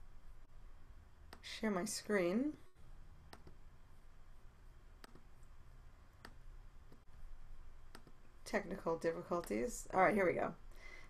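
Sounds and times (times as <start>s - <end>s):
low background hum: 0.0s - 11.0s
computer mouse clicks: 3.3s - 3.6s, 5.0s - 5.5s, 6.2s - 7.0s, 7.9s - 8.2s, 9.4s - 9.6s.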